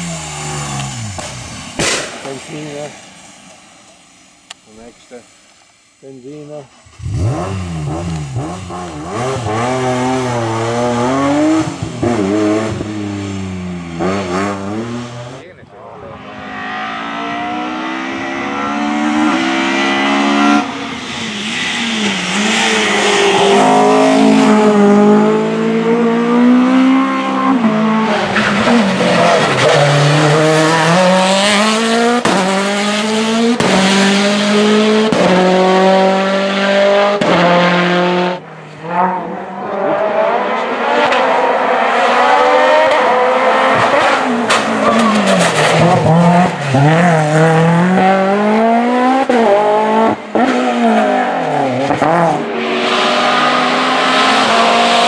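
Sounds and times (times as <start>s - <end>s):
racing car engines accelerating: 6.9s - 55.0s.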